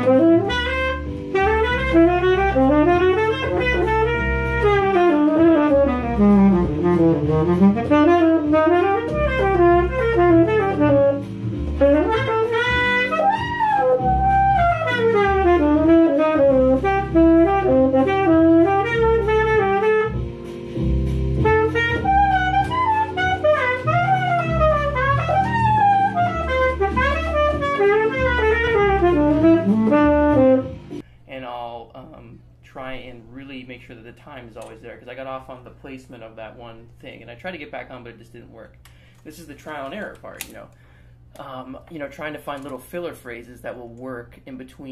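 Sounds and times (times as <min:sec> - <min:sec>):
saxophone improvising jazz: 0:00.0 - 0:31.0
blues backing track: 0:00.0 - 0:31.2.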